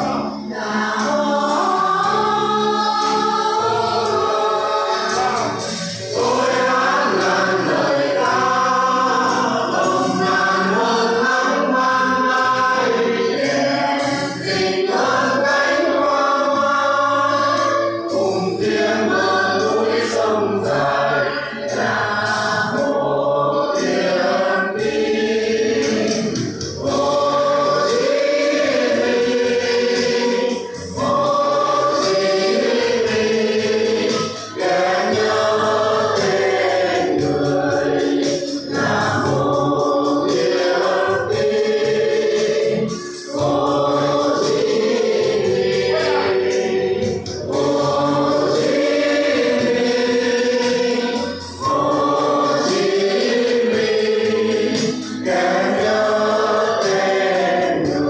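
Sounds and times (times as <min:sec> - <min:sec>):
group singing in unison: 0:00.0 - 0:58.0.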